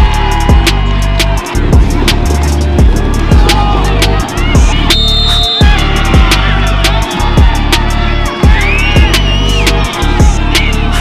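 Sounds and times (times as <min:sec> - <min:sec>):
held low bass line: 0:00.0 - 0:11.0.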